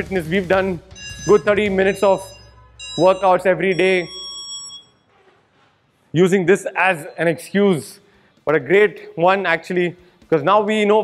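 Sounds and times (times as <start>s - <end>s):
high electronic tone: 0.9s - 5.0s.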